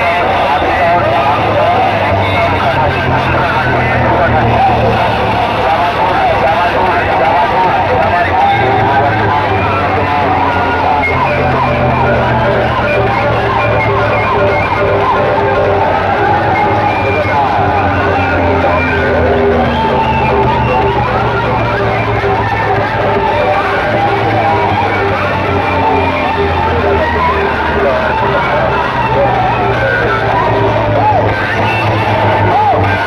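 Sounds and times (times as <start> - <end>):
distorted voice-like line over loudspeakers: 0.0 - 33.0
low bass: 0.0 - 33.0.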